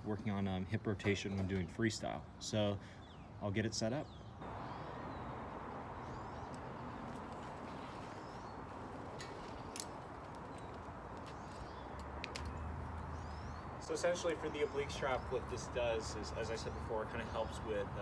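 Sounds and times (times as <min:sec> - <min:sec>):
bird chirps: 0:04.0 - 0:17.7
small sharp clicks: 0:09.2 - 0:12.6.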